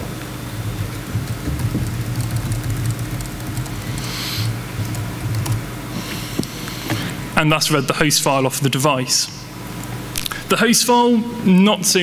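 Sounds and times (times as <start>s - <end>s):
steady low hum: 0.0s - 12.0s
laptop keyboard typing: 0.8s - 5.7s.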